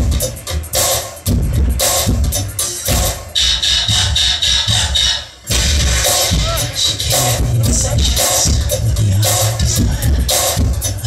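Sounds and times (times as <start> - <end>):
dance music with heavy bass: 0.0 - 11.0.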